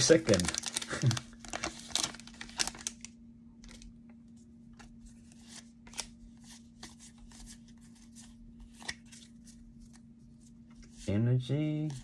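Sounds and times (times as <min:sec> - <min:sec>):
foil wrapper crinkling: 0:00.0 - 0:03.9
cards rustling: 0:04.8 - 0:11.1.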